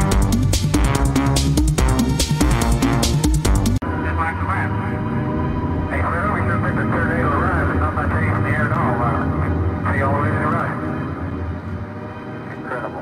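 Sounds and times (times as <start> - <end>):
low synth drone: 0.0 - 13.0
warbling voice-like synth: 4.0 - 10.9.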